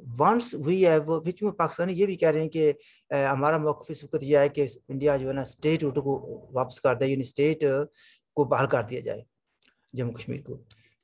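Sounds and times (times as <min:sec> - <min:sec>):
man speaking: 0:00.0 - 0:10.8.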